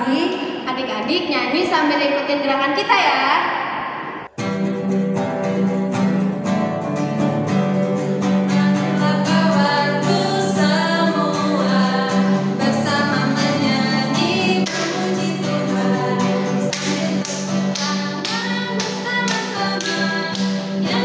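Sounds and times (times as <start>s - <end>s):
children's song with instrumental backing: 7.0s - 21.0s.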